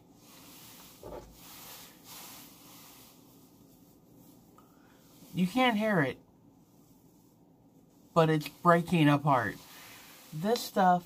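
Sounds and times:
soft scrapes: 0.0 - 5.8
low room hiss: 0.0 - 11.0
rubbing and rustling on microphone: 0.0 - 11.0.

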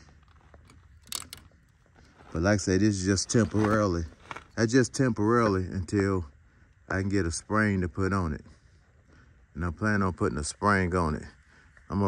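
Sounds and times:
choke lever clicks: 0.6 - 1.5.

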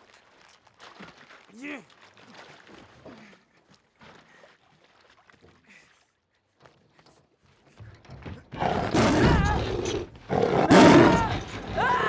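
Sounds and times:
tiger roaring: 8.6 - 12.0.

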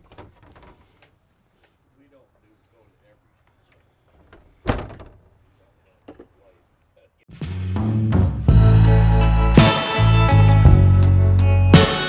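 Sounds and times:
wooden door knocking shut: 4.6 - 5.2.

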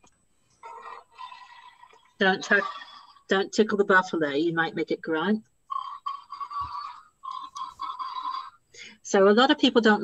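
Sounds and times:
tinny recorded buffalo grunt: 0.6 - 3.2, 5.7 - 8.6.

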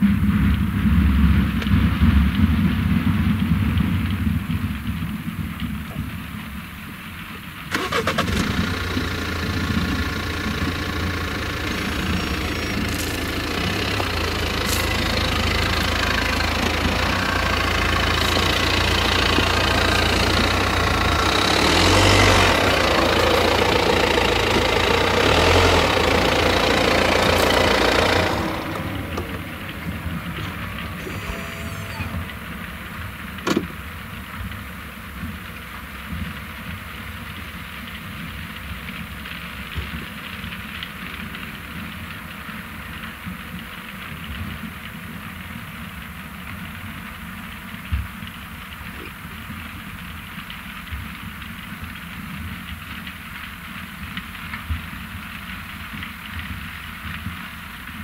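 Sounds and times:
diesel engine droning: 7.7 - 36.0.

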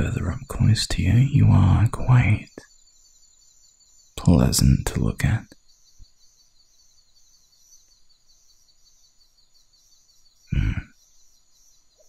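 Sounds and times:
faint high-pitched chirring: 0.0 - 12.0
man's short deep vocal sound: 10.5 - 11.0.

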